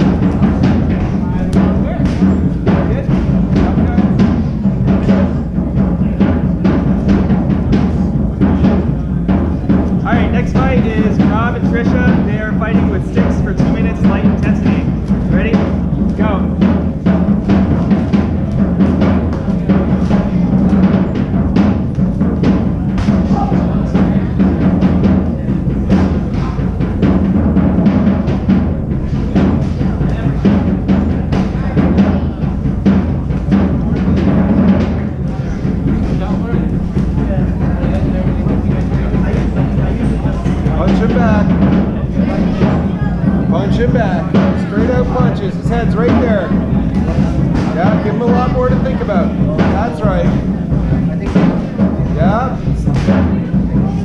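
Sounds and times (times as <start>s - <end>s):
music with heavy drums: 0.0s - 54.0s.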